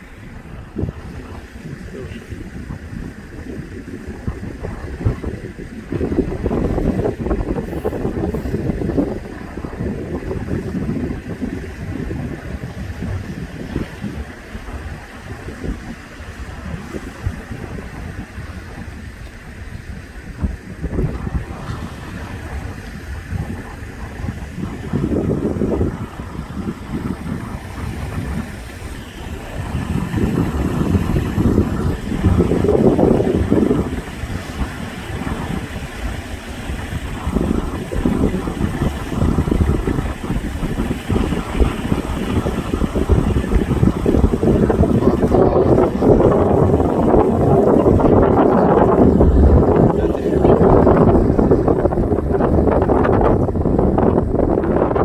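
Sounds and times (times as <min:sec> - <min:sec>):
sea waves breaking on rocks: 0:00.0 - 0:55.0
wind buffeting microphone: 0:00.0 - 0:55.0.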